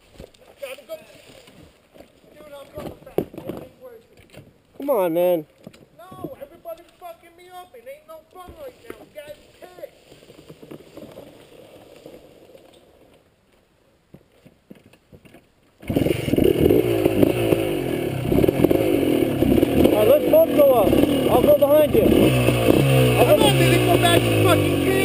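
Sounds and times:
distant engine: 15.8 - 25.0
motorcycle engine idling: 16.8 - 25.0.

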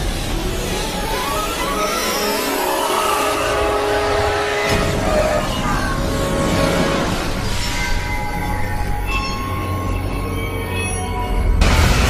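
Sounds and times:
steady high metallic tones: 0.0 - 12.0.

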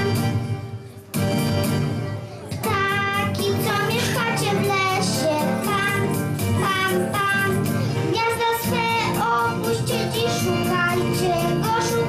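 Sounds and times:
backing track with steady beat: 0.0 - 12.0
girl singing into a microphone: 2.6 - 12.0.

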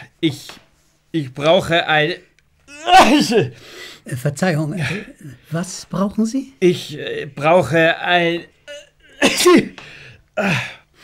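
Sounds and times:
person sneezing: 2.7 - 3.6, 8.7 - 10.8.

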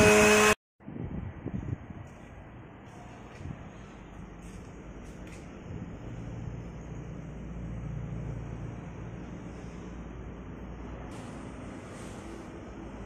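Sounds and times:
low rumble of background noise: 0.8 - 13.0.

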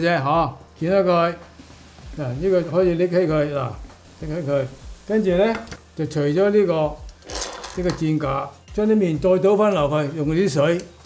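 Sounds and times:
man speaking: 2.2 - 7.0, 7.8 - 10.8.

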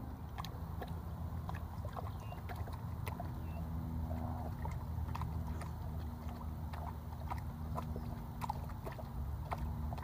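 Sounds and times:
steady low rumble: 0.0 - 10.0
water sloshing and splashing: 0.0 - 10.0.

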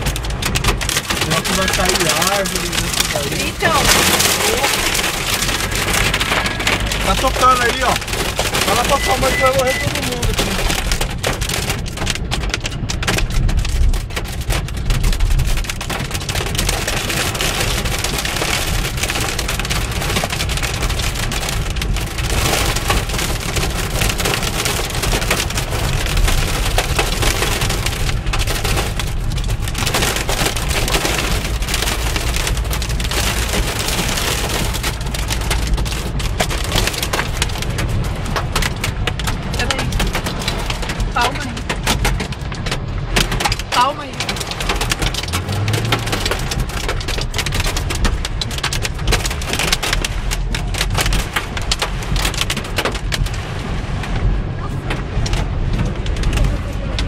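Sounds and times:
downpour rushing: 0.0 - 57.0
hail clattering on car roof: 0.0 - 57.0.

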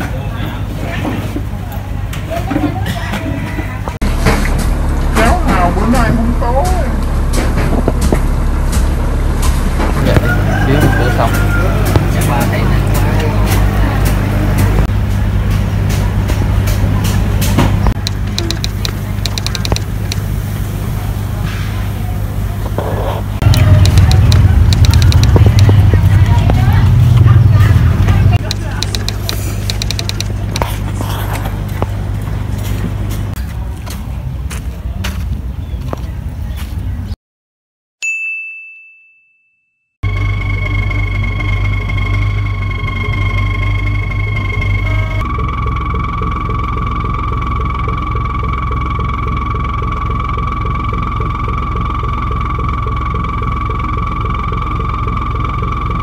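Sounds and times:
steady low hum: 4.0 - 34.2, 40.1 - 56.0
indistinct voices: 10.0 - 32.4
single chime: 38.0 - 39.9.

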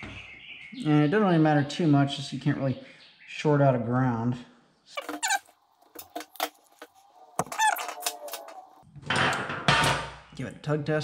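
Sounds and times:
crimping tool squeak: 5.0 - 5.6, 7.5 - 8.1.

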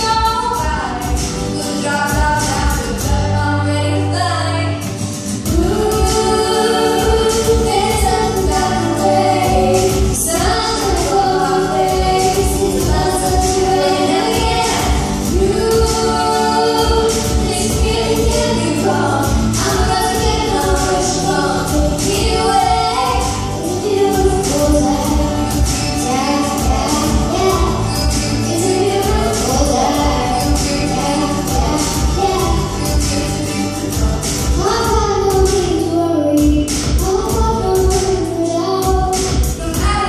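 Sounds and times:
backing music with beat: 0.0 - 3.4, 4.8 - 40.0
woman and girl singing: 0.0 - 4.8, 5.5 - 40.0.

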